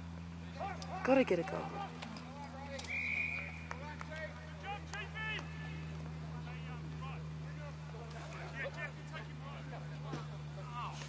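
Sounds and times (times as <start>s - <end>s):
steady low hum: 0.0s - 11.0s
distant shouts of players: 0.3s - 11.0s
whistle blast: 2.8s - 3.8s.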